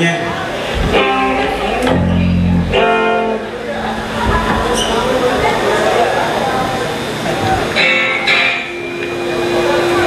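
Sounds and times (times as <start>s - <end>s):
low bass guitar note: 0.9s - 5.5s
electric guitar chord: 0.9s - 5.6s.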